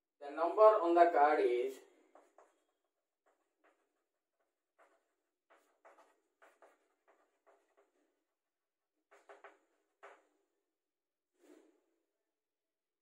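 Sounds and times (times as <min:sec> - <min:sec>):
chalk writing on blackboard: 0:02.0 - 0:08.3.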